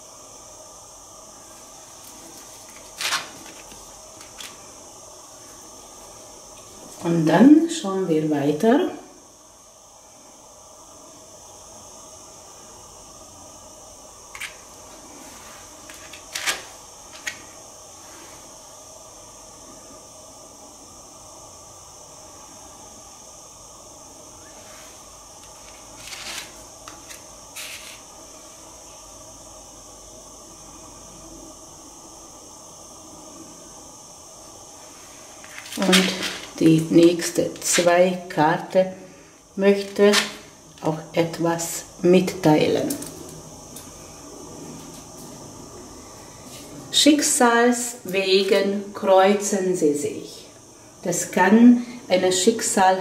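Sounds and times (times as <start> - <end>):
steady hiss: 0.0 - 53.0.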